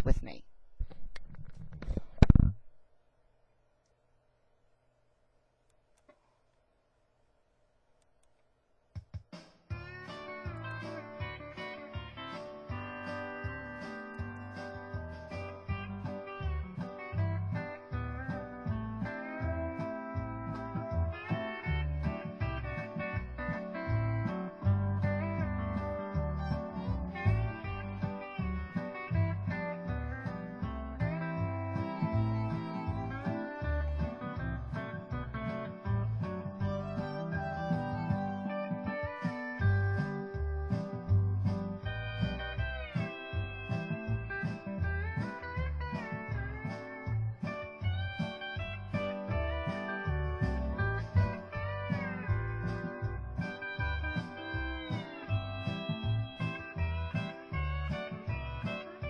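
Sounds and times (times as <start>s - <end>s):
bouncing bass beat: 9.0s - 59.0s
steel guitar country tune: 9.7s - 59.0s.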